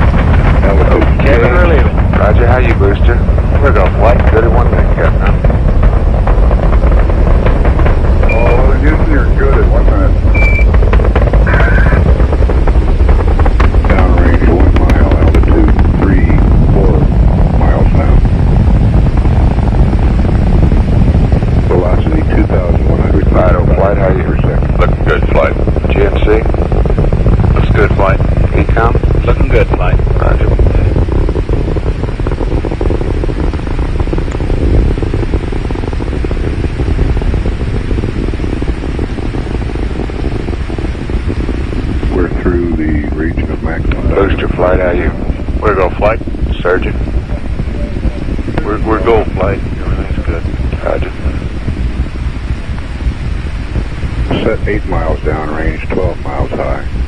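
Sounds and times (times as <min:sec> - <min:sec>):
indistinct voices talking: 0:00.0 - 0:57.0
rocket engines deep rumble: 0:00.0 - 0:57.0
short high beeps: 0:10.4 - 0:10.7.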